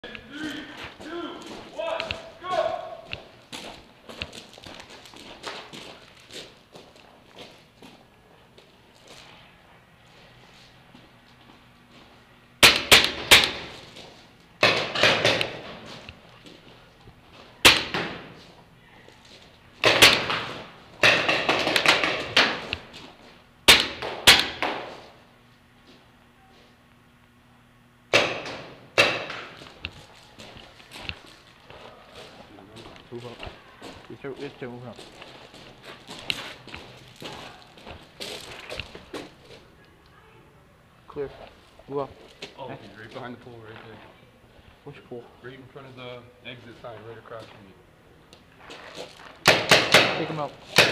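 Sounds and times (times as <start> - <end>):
paintball markers firing: 12.6 - 13.8, 14.6 - 15.7, 17.6 - 18.3, 19.8 - 22.9, 23.7 - 24.9, 28.1 - 29.9, 49.4 - 50.9.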